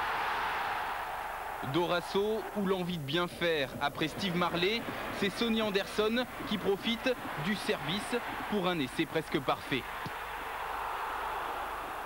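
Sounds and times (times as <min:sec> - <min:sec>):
stadium crowd cheering: 0:00.0 - 0:03.2, 0:04.1 - 0:12.0.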